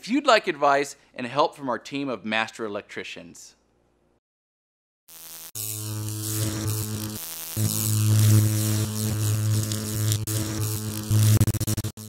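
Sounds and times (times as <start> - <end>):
crackling static: 5.1 - 12.0
low electric hum: 5.6 - 11.4.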